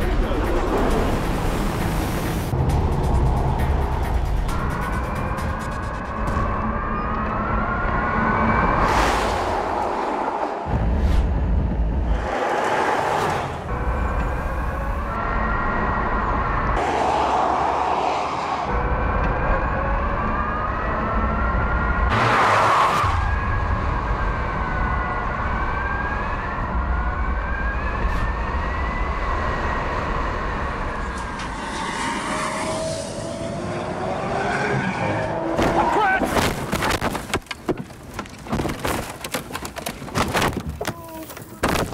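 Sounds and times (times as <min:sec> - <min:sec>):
loud rushes of noise: 0:07.7 - 0:19.6, 0:28.6 - 0:35.9.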